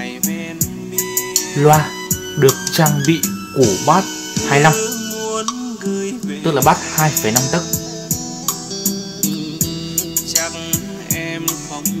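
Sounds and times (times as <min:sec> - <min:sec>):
guitar over drum beat: 0:00.0 - 0:12.0.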